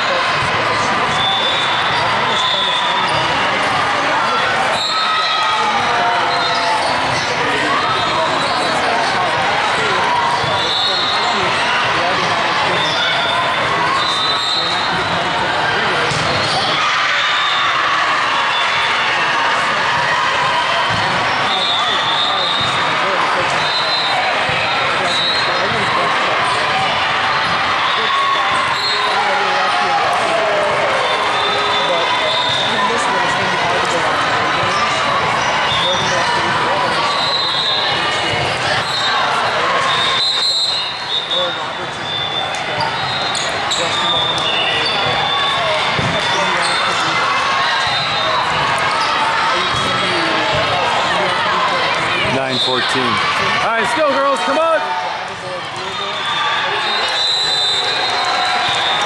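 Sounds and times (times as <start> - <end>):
many voices talking and calling: 0.0 - 59.0
balls bouncing and struck: 45.9 - 46.4.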